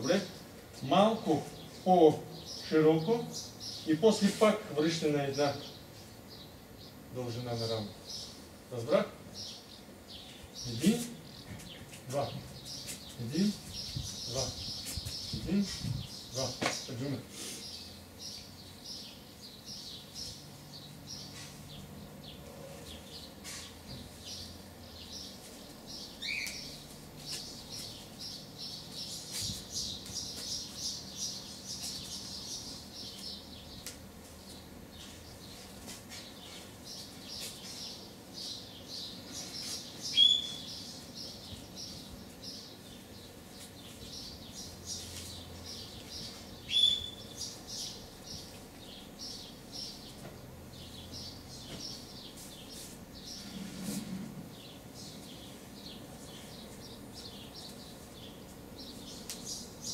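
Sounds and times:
small birds chirping: 0:00.0 - 0:59.9
loud single bird calls: 0:40.1 - 0:40.7.

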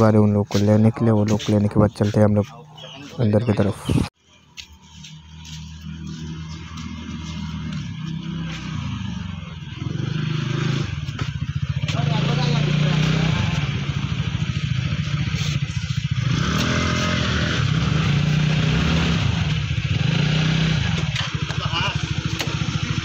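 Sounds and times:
people talking: 0:00.0 - 0:04.1, 0:11.7 - 0:13.9, 0:21.3 - 0:22.2
scooter engines running: 0:00.0 - 0:23.0.

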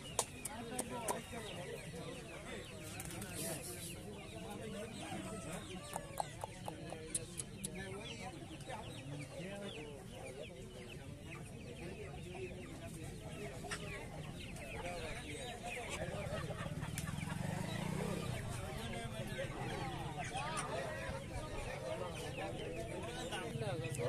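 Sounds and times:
chickens clucking and peeping: 0:00.0 - 0:24.0.

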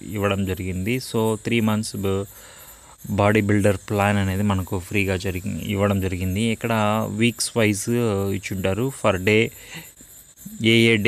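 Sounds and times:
man talking: 0:00.0 - 0:02.3, 0:03.0 - 0:09.8, 0:10.4 - 0:11.0.

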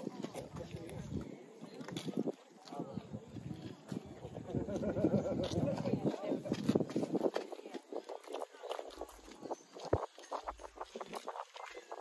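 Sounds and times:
footsteps on wooden footbridge: 0:04.8 - 0:12.0.

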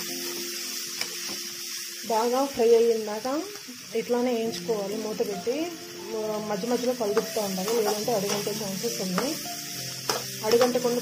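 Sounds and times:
carrots sizzling in hot oil: 0:00.0 - 0:11.0.

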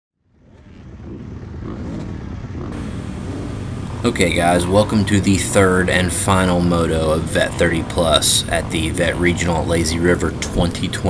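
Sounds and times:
dirt bike engine running: 0:00.8 - 0:11.0.

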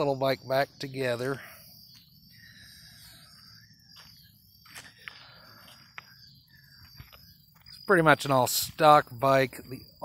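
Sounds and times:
footsteps on gravel: 0:03.3 - 0:06.2, 0:06.8 - 0:07.9.

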